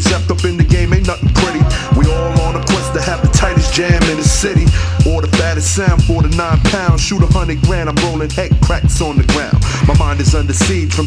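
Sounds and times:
deep bass line: 0.0s - 11.0s
drum beat: 0.0s - 11.0s
rapping vocal: 0.0s - 11.0s.

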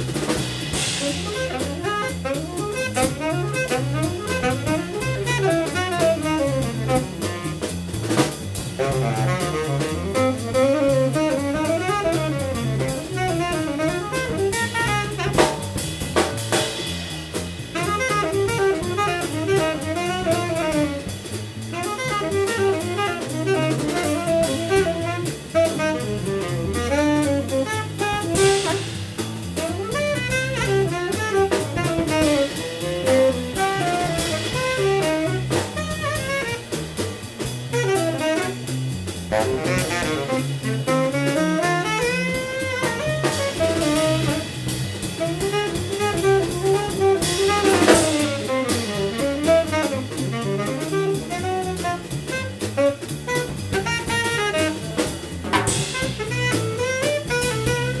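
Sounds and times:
double bass: 0.0s - 58.0s
drum kit cymbal pattern: 0.0s - 58.0s
sharp drum accents: 0.0s - 58.0s
tenor saxophone melody: 0.8s - 7.8s, 8.8s - 15.6s, 17.7s - 36.8s, 37.7s - 58.0s.

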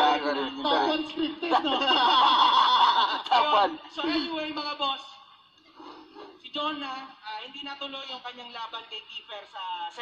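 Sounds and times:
people laughing: 0.0s - 4.3s
people talking: 0.0s - 5.0s.

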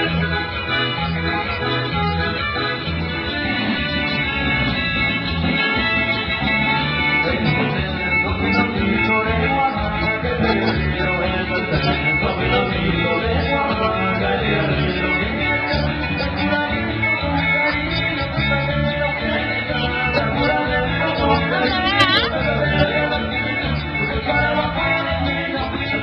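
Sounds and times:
live band dance music: 0.0s - 26.0s.

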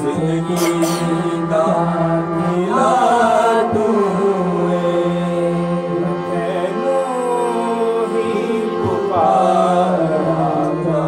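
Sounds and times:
harmonium drone: 0.0s - 11.0s
men singing together: 0.0s - 11.0s.

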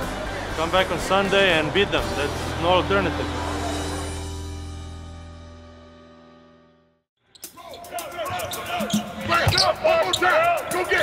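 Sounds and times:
background music: 0.0s - 11.0s
shoe squeaks: 7.3s - 10.4s
players' voices: 7.5s - 11.0s.

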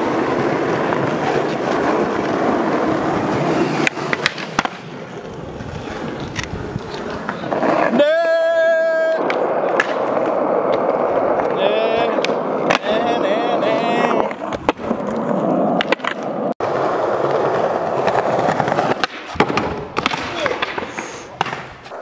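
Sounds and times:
skateboard wheels clacking over joints: 0.0s - 22.0s
skateboard wheels rolling on paving: 0.0s - 22.0s.

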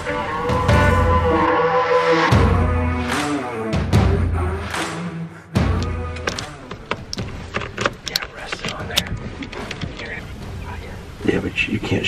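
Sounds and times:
light clicks and knocks of gear: 6.2s - 10.9s.

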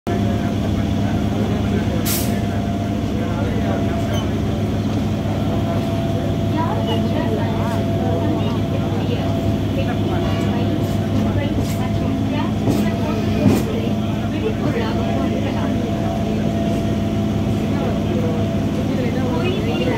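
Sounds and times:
train running rumble: 0.1s - 19.9s
wheels clacking on track: 0.1s - 19.9s.

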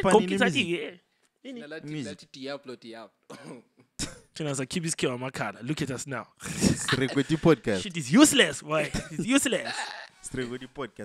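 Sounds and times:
man speaking into a microphone: 0.0s - 0.9s, 1.5s - 3.0s, 4.4s - 11.0s.

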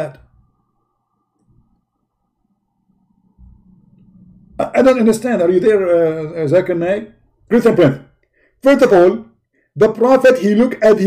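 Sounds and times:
man speaking: 0.0s - 0.3s, 4.6s - 11.0s
thin steady tone: 0.0s - 7.4s
faint low clicks: 1.3s - 2.0s, 2.9s - 4.6s.

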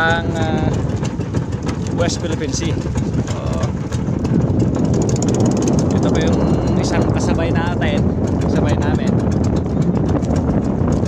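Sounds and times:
boat engine low rumble: 0.0s - 11.0s.

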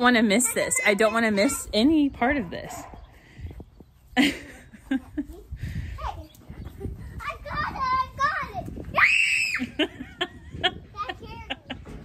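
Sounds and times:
girl squealing: 9.0s - 9.8s.

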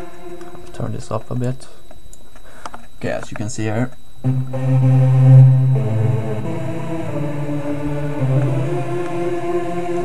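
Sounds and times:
synth lead notes: 0.0s - 1.1s, 4.2s - 10.0s.

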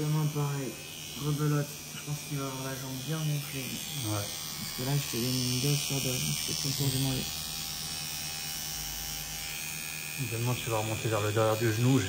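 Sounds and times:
tattoo machine buzzing: 0.0s - 12.0s.

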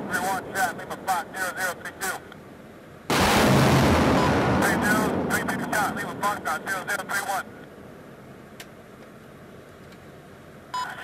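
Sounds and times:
rocket launch roar: 3.1s - 6.8s.

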